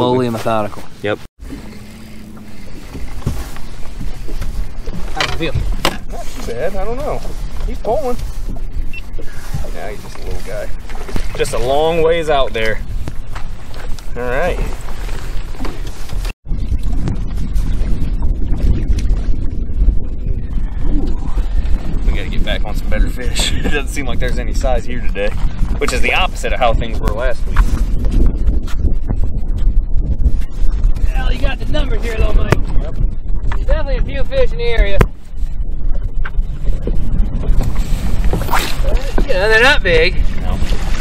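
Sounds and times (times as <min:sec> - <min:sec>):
water against boat hull: 0:00.0 - 0:19.4, 0:34.9 - 0:41.0
wind on microphone: 0:00.0 - 0:41.0.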